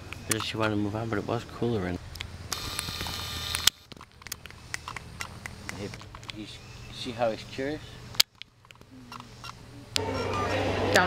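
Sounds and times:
camcorder zoom motor whirring: 2.5 - 3.8
zoom motor click: 2.5 - 5.6.

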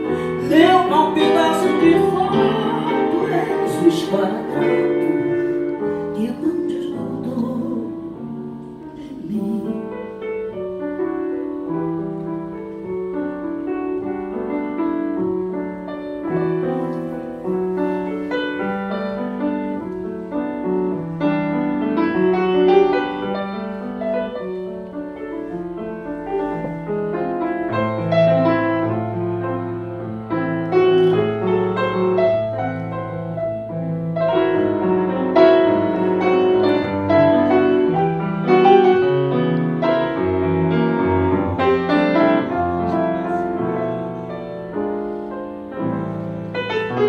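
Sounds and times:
grand piano playing: 0.0 - 47.0.

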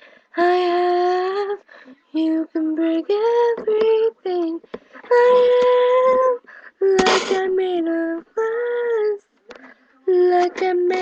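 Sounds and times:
girl singing unaccompanied: 0.3 - 9.3, 10.0 - 11.0.

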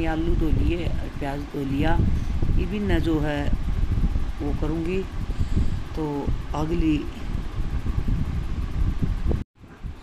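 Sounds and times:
low steady rumbling: 0.0 - 10.0.

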